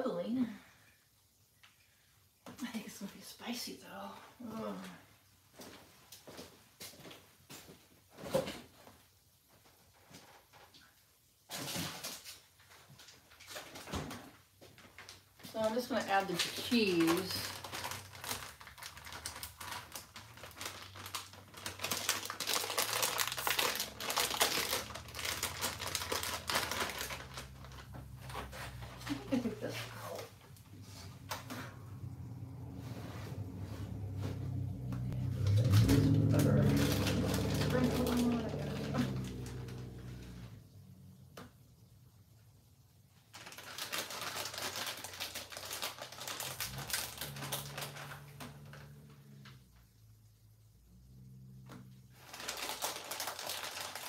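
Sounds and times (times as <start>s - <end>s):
plastic bag crinkling: 11.5s - 31.4s, 35.2s - 40.4s, 43.2s - 49.1s, 52.1s - 54.0s
low-pitched sound: 31.3s - 40.8s.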